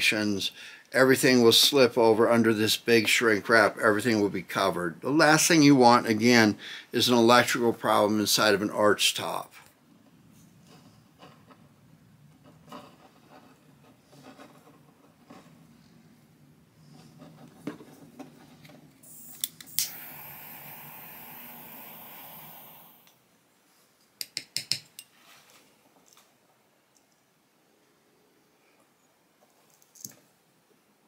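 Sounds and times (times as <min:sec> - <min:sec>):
lighter flame hissing: 0:19.1 - 0:23.1.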